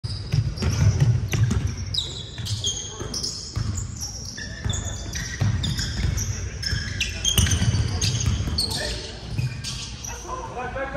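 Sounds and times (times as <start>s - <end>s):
sneakers squeaking on floor: 0.0s - 10.6s
basketball dribbling: 0.1s - 9.6s.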